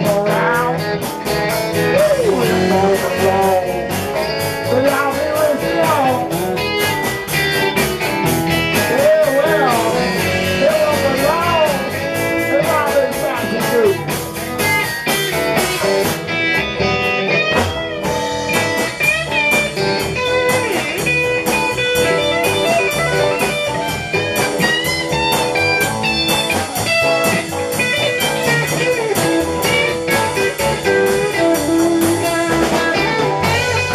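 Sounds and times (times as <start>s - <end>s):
drum kit cymbal beat: 0.0s - 33.9s
lead electric guitar: 0.0s - 33.9s
rhythm guitar: 0.0s - 33.9s.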